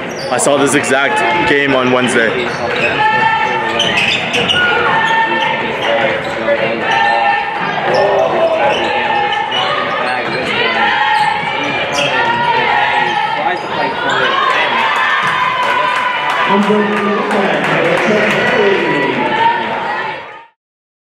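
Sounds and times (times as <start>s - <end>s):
voices echoing in hall: 0.0s - 20.6s.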